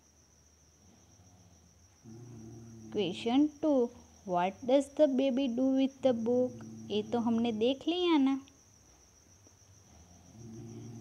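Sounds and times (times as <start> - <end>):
faint high-pitched insect trill: 0.0 - 11.0.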